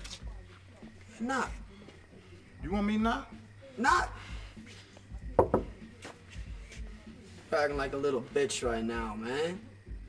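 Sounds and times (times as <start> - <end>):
knuckles knocking on wooden door: 5.3 - 5.8.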